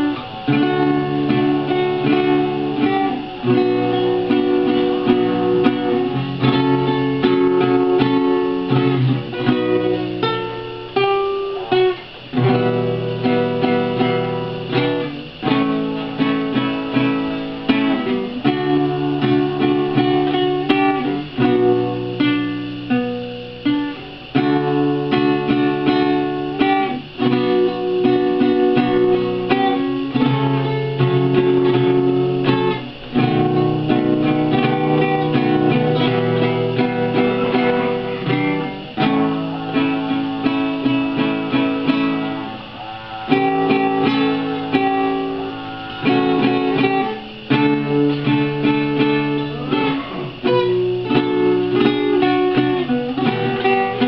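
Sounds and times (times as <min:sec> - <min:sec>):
solo classical guitar: 0:00.0 - 0:54.0.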